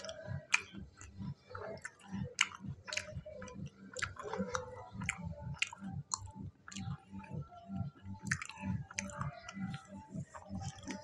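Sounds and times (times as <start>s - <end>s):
wet mouth clicks: 0.0s - 11.0s
person chewing fried food: 1.8s - 6.9s, 8.3s - 9.5s.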